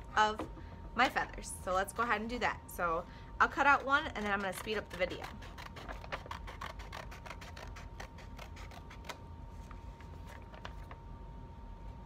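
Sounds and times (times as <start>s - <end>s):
scissors snipping paper: 3.7s - 9.2s.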